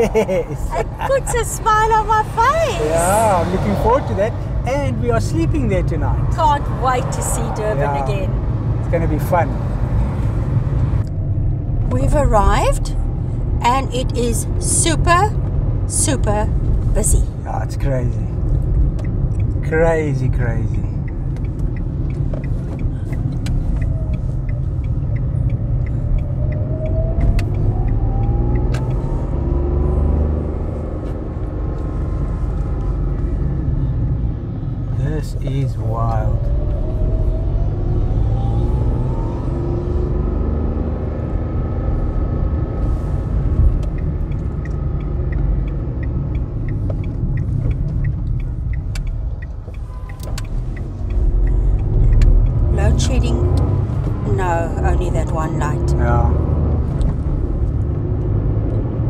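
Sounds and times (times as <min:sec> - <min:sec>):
car engine and tyres rumbling: 0:00.0 - 0:59.0.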